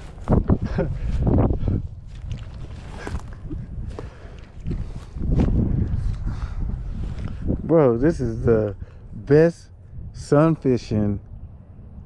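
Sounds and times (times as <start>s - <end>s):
steps in grass: 0.0s - 6.3s
wind rumble on microphone: 0.0s - 12.0s
fish flopping on grass: 2.1s - 5.8s.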